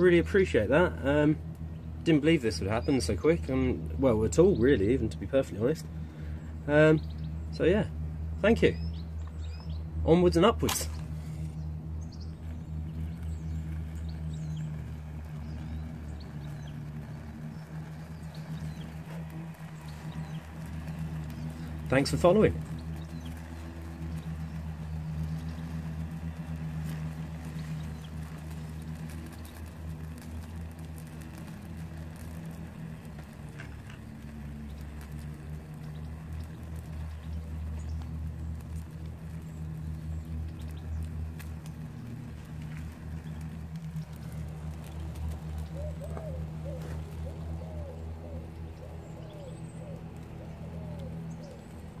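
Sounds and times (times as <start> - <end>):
fire crackling: 0.0 - 52.0
low mechanical hum: 0.0 - 52.0
bird cooing: 45.7 - 51.7.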